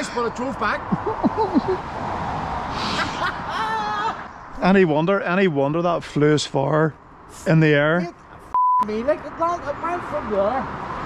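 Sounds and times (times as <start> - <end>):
vehicle passing on road: 0.0 - 11.0.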